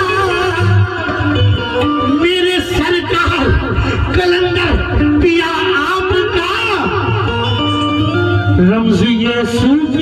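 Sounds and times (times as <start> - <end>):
harmonium held notes: 0.0 - 10.0.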